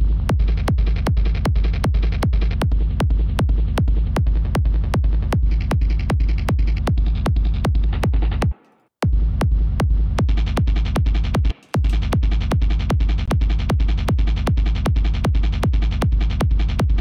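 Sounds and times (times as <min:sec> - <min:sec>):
continuous low rumble: 0:00.0 - 0:08.4
distorted kick drum loop: 0:00.0 - 0:17.0.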